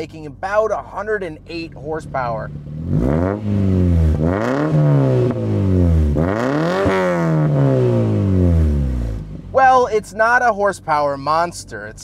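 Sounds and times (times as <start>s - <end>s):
car engine revving: 0.4s - 11.3s.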